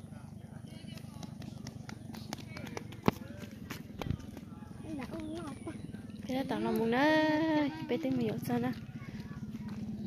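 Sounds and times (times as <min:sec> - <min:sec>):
distant people talking: 0:00.0 - 0:10.0
steady low hum: 0:00.0 - 0:10.0.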